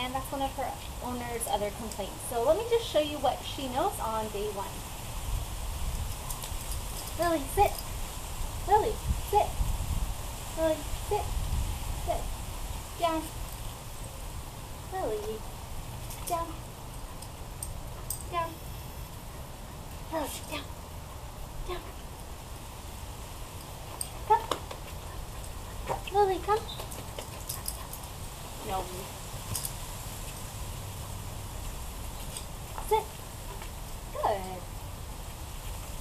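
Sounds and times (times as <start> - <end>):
low outdoor rumble: 0.0 - 36.0
woman giving dog commands: 7.2 - 7.8, 8.7 - 9.6, 10.6 - 11.4, 12.0 - 12.3, 13.0 - 13.4, 14.9 - 15.4, 16.3 - 16.6, 18.2 - 18.6, 20.1 - 20.7, 21.6 - 22.0, 24.2 - 24.6, 26.1 - 26.8, 28.6 - 29.1, 32.8 - 33.1, 34.1 - 34.7.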